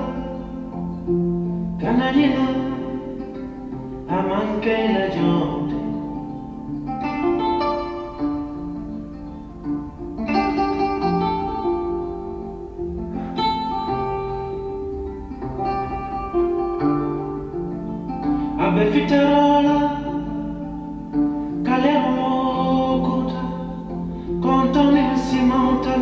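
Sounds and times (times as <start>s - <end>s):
acoustic guitar: 0.0s - 26.0s
person singing: 0.0s - 26.0s.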